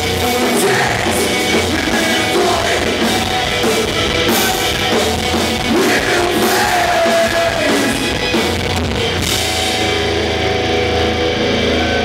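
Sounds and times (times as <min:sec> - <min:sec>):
distorted guitars and bass chord: 0:00.0 - 0:12.0.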